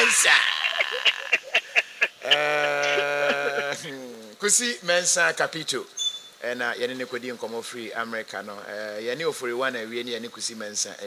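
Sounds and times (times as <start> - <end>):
man holding a long note: 2.2 - 4.1.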